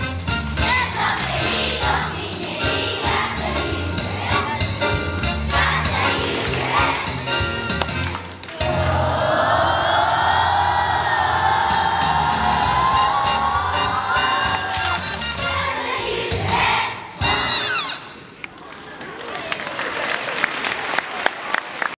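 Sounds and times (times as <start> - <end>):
backing track: 0.0 - 18.1
children's choir singing: 0.5 - 7.6, 8.6 - 17.2
audience applause and cheering: 1.0 - 2.1, 5.4 - 15.8, 18.5 - 22.0.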